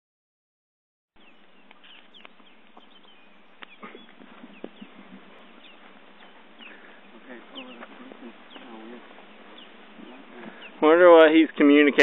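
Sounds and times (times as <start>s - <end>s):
geese peeping: 1.2s - 12.0s
low goose calls: 1.3s - 11.8s.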